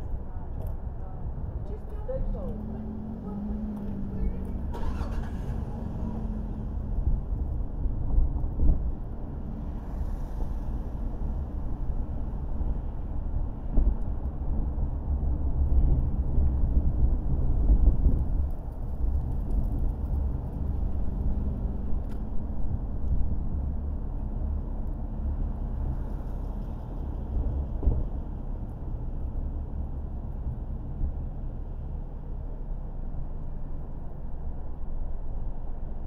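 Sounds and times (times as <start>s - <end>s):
car engine and road noise: 0.0s - 36.0s.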